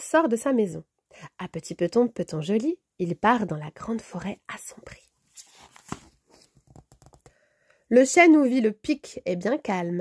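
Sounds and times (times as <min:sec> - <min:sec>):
woman reading aloud: 0:00.0 - 0:05.1, 0:07.9 - 0:10.0
paper rustling: 0:05.2 - 0:07.2
page turning click: 0:05.4 - 0:07.3.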